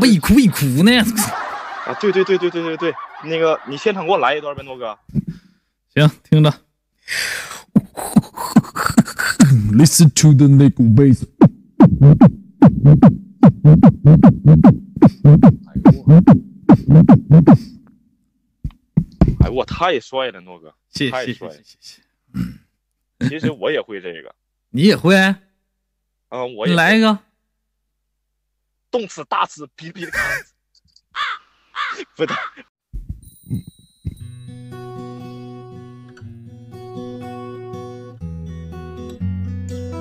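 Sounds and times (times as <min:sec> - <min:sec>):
beatboxed bass line: 0:07.7 - 0:09.8, 0:11.2 - 0:17.7, 0:18.7 - 0:19.6, 0:32.9 - 0:34.2
low soft thumps: 0:11.3 - 0:17.5, 0:18.6 - 0:19.5, 0:32.9 - 0:34.3.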